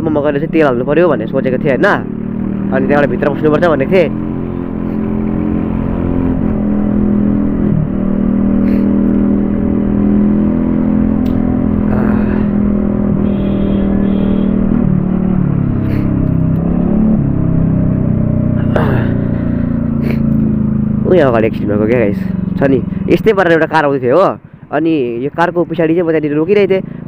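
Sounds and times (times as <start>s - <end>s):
wind and road noise: 0.0s - 27.0s
scooter engine humming: 0.1s - 27.0s.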